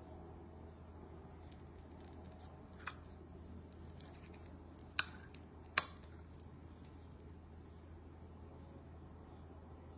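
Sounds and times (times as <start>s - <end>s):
low steady hum: 0.0s - 9.9s.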